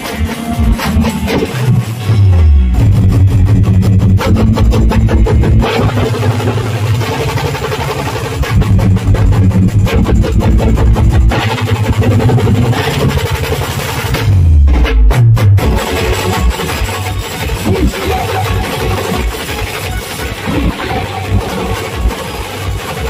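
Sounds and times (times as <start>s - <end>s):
snare and bass drums beating: 0.0s - 1.8s, 2.8s - 23.0s
deep bass notes: 0.0s - 23.0s
deep falling bass sweep: 0.6s - 16.8s.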